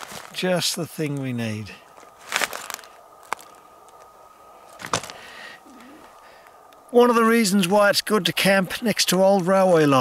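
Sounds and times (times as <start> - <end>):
crunching rustle of timber: 0.0 - 10.0
sharp wooden cracks: 2.0 - 4.1, 4.7 - 5.2.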